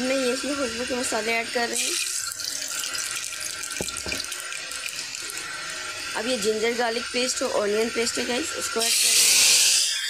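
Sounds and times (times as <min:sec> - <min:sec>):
hot oil sizzling in a pot: 0:00.0 - 0:10.0.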